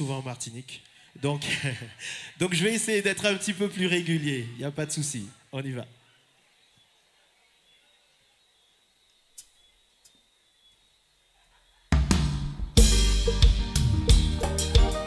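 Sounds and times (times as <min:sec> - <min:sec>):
drum kit: 0:11.9 - 0:15.0
live band playing: 0:12.0 - 0:15.0.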